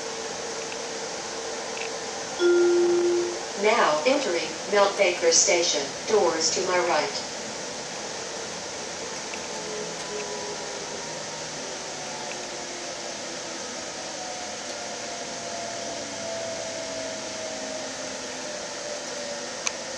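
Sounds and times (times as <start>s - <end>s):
light rail car running noise: 0.0s - 19.9s
faint whining tones: 1.8s - 3.6s.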